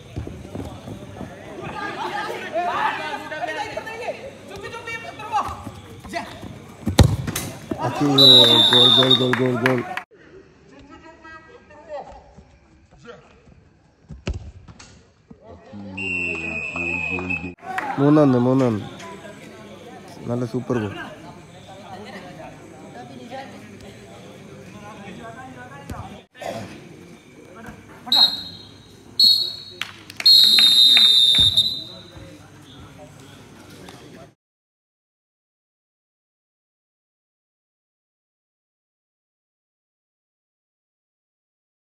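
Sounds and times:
football kicked hard: 0:06.8 - 0:07.8
pea whistle blasts: 0:08.2 - 0:09.2, 0:28.1 - 0:32.0.

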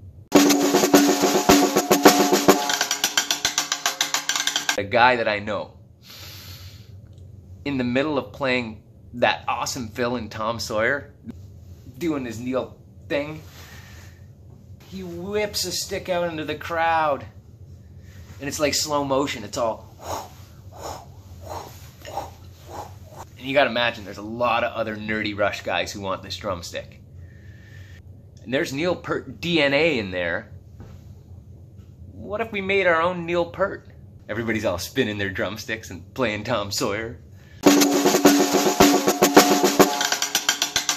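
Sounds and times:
snare drum fast strokes: 0:00.3 - 0:04.8, 0:37.6 - 0:40.9
man's whooshing breath puffs: 0:19.9 - 0:23.3.

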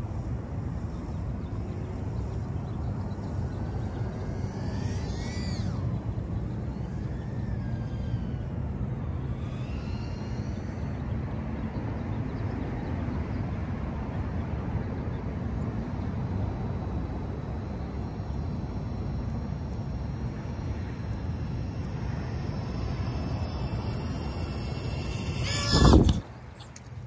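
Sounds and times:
quadcopter motors whining: 0:00.0 - 0:13.8, 0:14.4 - 0:27.0
steady low rumble: 0:00.0 - 0:27.0.

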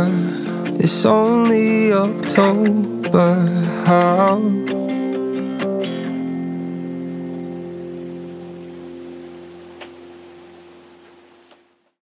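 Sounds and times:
acoustic guitar chord ringing: 0:00.0 - 0:11.5.

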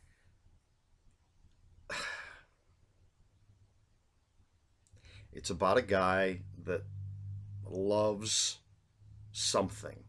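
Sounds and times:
man exhaling breathily: 0:01.9 - 0:02.5.

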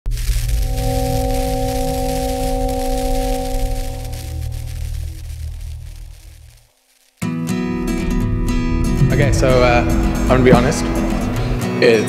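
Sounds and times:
deep rumble: 0:00.0 - 0:06.7, 0:07.9 - 0:11.7
sustained droning tone: 0:00.1 - 0:06.9, 0:07.7 - 0:11.7.

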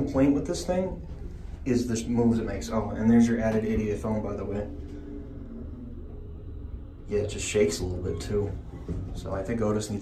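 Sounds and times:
elevator cab rumble: 0:00.0 - 0:10.0.

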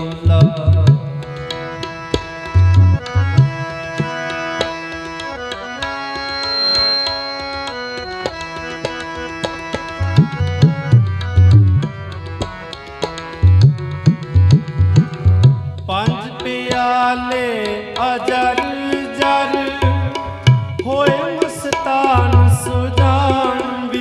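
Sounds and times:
harmonium melody: 0:00.0 - 0:24.0
tabla drumming: 0:00.0 - 0:24.0.

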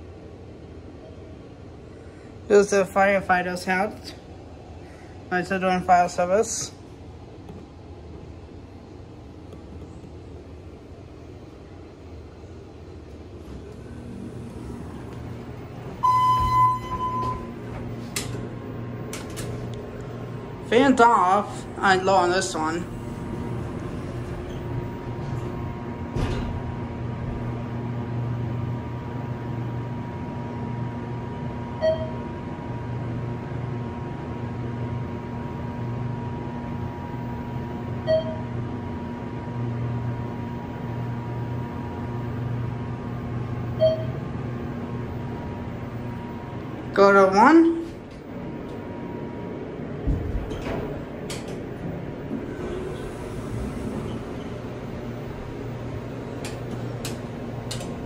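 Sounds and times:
elevator hum: 0:00.0 - 0:58.0
elevator chime: 0:15.8 - 0:19.5, 0:31.7 - 0:32.3, 0:38.0 - 0:38.6, 0:43.8 - 0:44.2
electronic chime tone: 0:16.0 - 0:17.5.

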